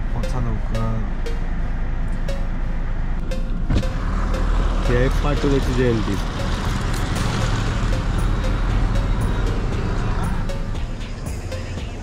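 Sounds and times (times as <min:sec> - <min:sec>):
engine rumble in car cabin: 0:00.0 - 0:12.0
truck passing alongside: 0:00.0 - 0:12.0.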